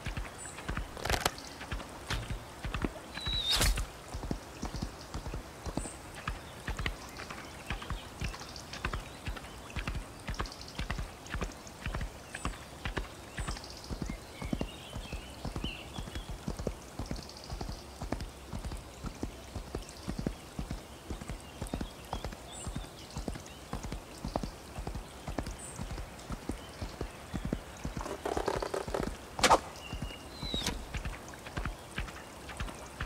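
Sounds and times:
horse hooves clip-clopping: 0.0 - 33.0.

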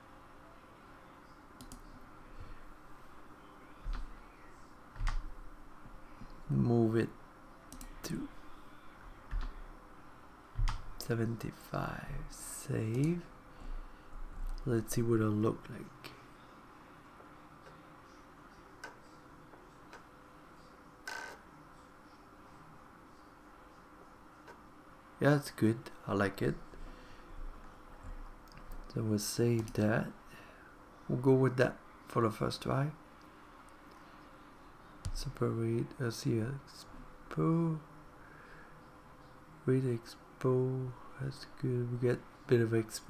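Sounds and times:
faint room hum: 0.0 - 43.0
soft clicks: 1.6 - 2.0, 7.7 - 8.0
computer keyboard keystrokes: 5.0 - 5.2, 10.6 - 10.8.

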